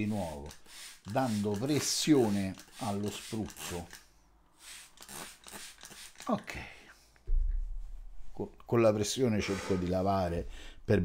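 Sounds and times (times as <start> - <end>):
spray bottle squirts: 0.0 - 4.0, 4.6 - 6.4.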